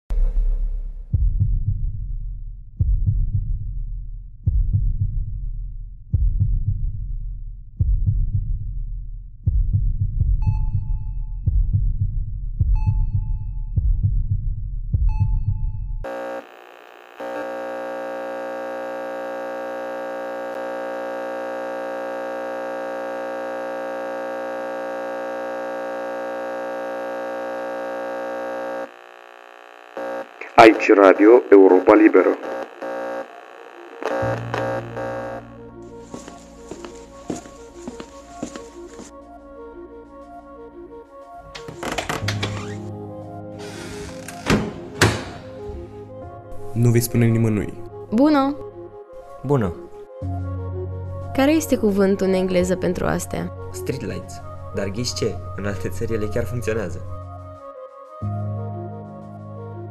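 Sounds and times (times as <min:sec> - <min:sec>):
steady drone: 0:16.1 - 0:36.0.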